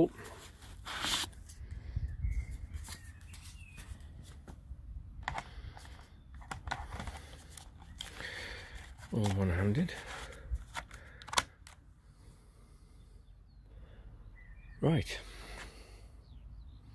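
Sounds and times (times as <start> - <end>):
plastic clicks and rustles: 5.2 - 11.8.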